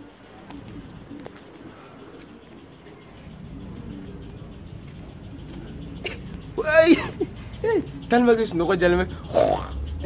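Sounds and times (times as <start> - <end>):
faint low animal calls: 0.0 - 10.0.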